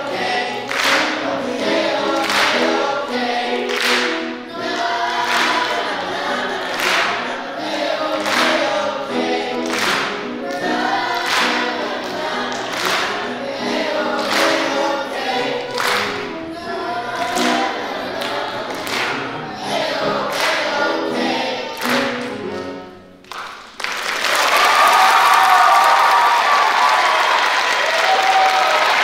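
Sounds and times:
choir singing upbeat pop: 0.0 - 22.8
piano accompaniment: 0.0 - 23.7.

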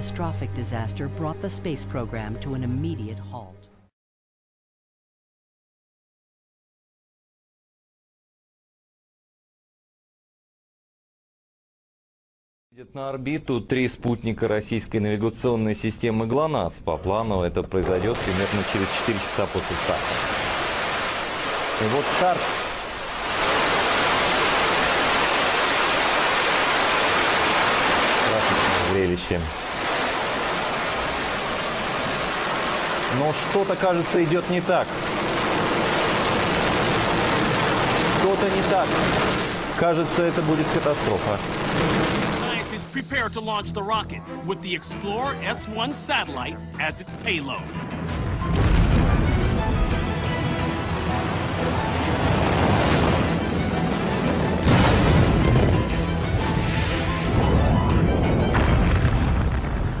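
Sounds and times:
background music: 0.0 - 3.9, 41.9 - 59.6
rocket engines rushing: 18.1 - 42.9
deep rumble of rocket: 34.4 - 42.8, 50.7 - 60.0
rocket exploding burst: 34.8 - 42.8, 48.4 - 49.8, 51.6 - 53.6, 54.4 - 60.0.

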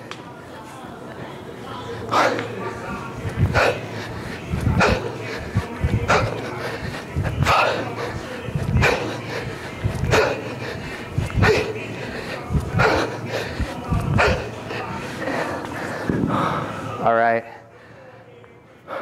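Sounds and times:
low breathing: 1.8 - 18.2.

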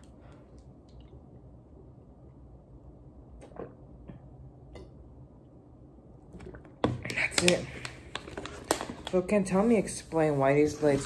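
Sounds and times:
low room hum: 0.0 - 11.0
person swallowing water: 3.3 - 5.0.

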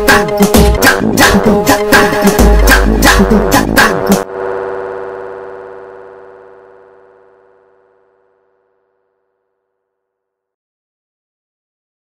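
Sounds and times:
synthesizer chord: 0.0 - 8.9.

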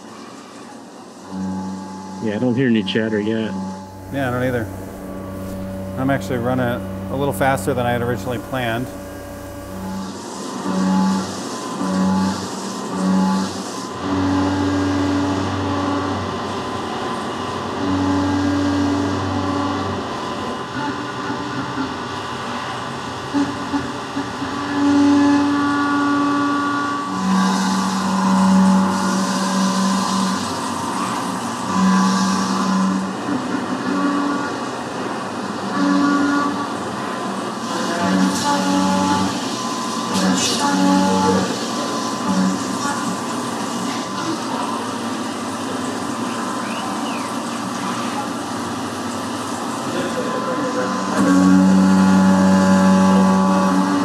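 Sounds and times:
cnc mill cutting metal: 0.0 - 54.0
steady pitched machine tones: 1.2 - 54.0.

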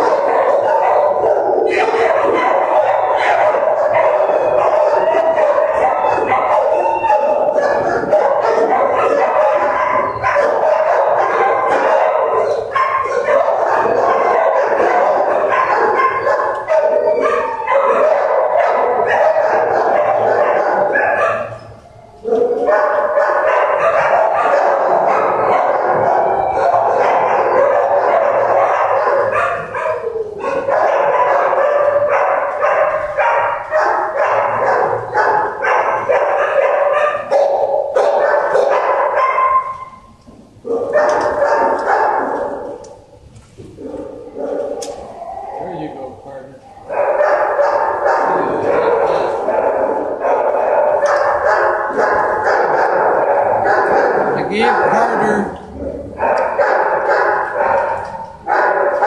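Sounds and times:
many dogs barking: 0.0 - 59.0.

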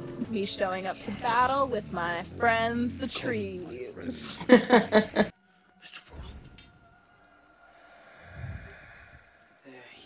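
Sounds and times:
low rumble: 6.1 - 9.4.

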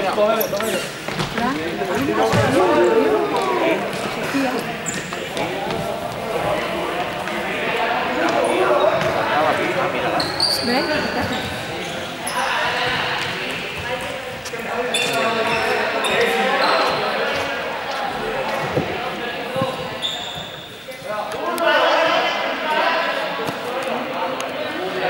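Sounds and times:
young people calling and chattering: 0.0 - 25.0.

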